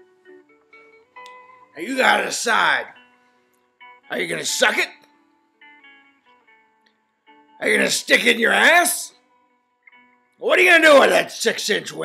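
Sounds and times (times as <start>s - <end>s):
plucked guitar notes: 0.0s - 11.2s.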